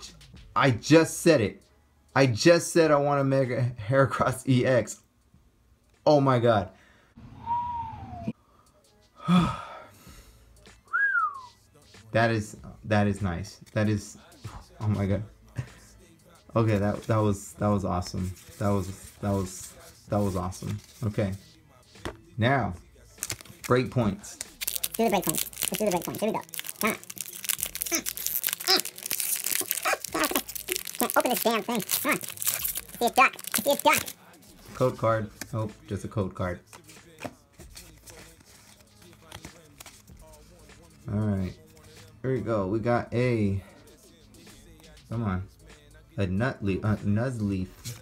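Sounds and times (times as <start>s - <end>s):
man whistling: 7.2s - 8.4s, 10.8s - 11.6s
man gasping: 9.2s - 10.5s
foil wrapper crinkling and tearing: 23.2s - 34.2s.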